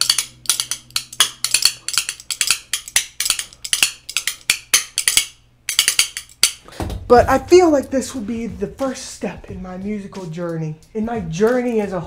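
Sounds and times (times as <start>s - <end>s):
metal spoons clacking: 0.0s - 6.7s.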